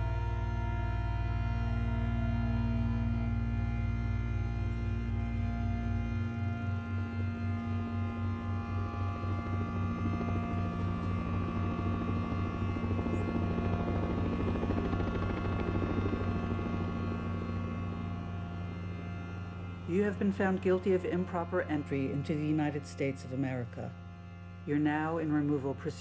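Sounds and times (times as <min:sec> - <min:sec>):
cello and electronic drone: 0:00.0 - 0:26.0
low pulsing throb: 0:00.0 - 0:26.0.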